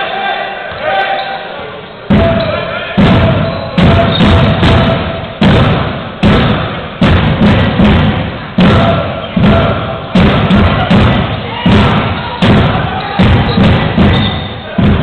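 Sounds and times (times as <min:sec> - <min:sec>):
reverberant thumps in a hall: 0:01.8 - 0:15.0.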